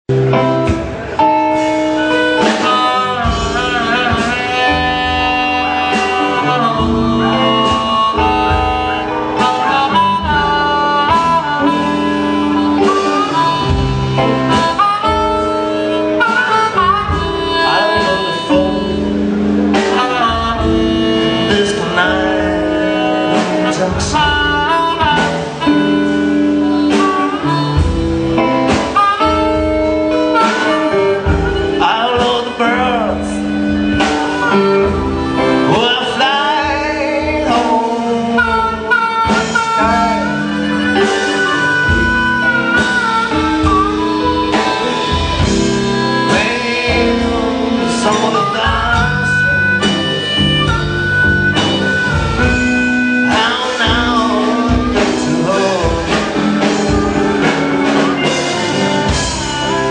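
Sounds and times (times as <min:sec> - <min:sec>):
bass: 0:00.0 - 0:59.9
guitar: 0:00.1 - 0:59.9
harmonica: 0:00.4 - 0:59.9.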